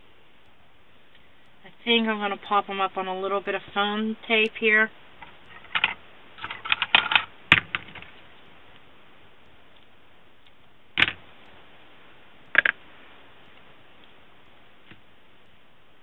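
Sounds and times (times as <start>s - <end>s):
sharp clicks: 12.4s - 12.8s.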